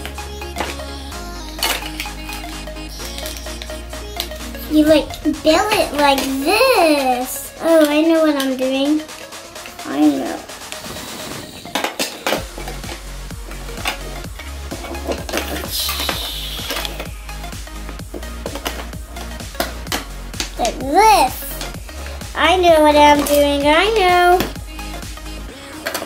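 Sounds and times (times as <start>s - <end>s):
background music with steady beat: 0.0s - 26.0s
child's voice: 3.0s - 9.1s, 9.8s - 10.5s, 20.5s - 21.7s, 22.3s - 24.6s.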